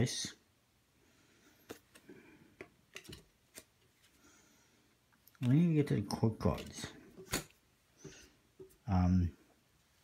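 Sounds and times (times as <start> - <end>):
playing cards rustling: 1.4 - 4.4, 5.2 - 8.8.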